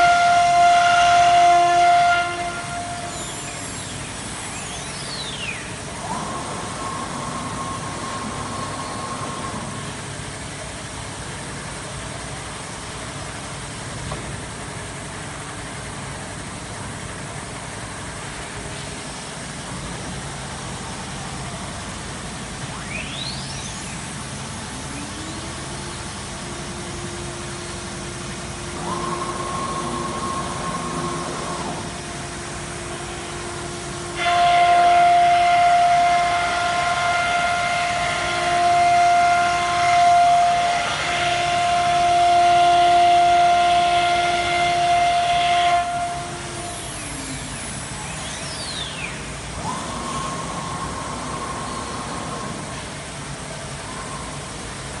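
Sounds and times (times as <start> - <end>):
router spindle whine: 28.0 - 35.7, 36.4 - 53.0.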